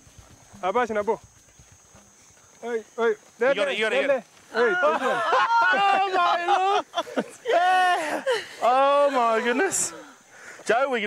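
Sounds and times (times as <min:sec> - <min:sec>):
footsteps through dry grass: 0:00.0 - 0:05.2
person laughing: 0:04.6 - 0:10.1.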